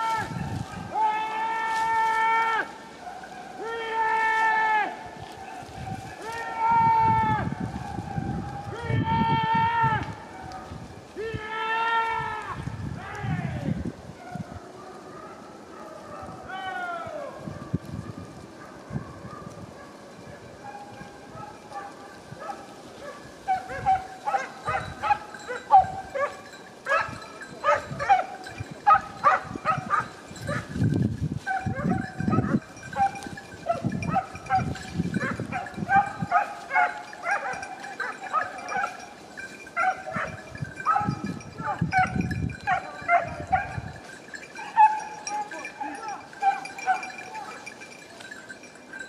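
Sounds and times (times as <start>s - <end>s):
hounds baying and yelping: 1.7s - 6.6s, 7.4s - 8.8s, 10.1s - 11.2s, 14.1s - 30.8s, 31.4s - 49.0s.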